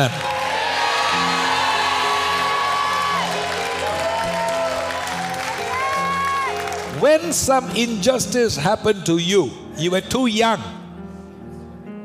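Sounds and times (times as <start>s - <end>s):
congregation cheering and shouting: 0.0s - 7.6s.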